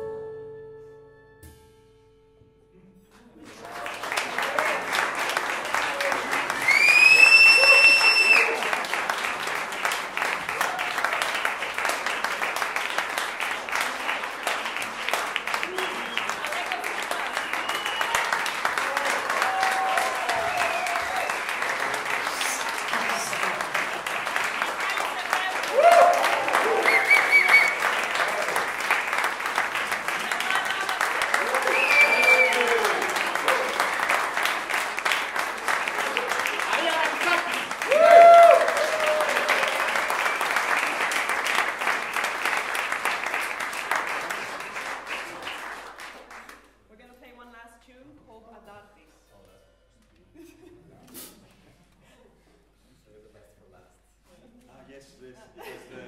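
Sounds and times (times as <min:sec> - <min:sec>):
audience applauding: 0:03.2 - 0:46.7
shouts and whistles: 0:06.6 - 0:08.6, 0:17.4 - 0:18.4, 0:19.5 - 0:21.4, 0:25.7 - 0:28.0, 0:31.4 - 0:33.0.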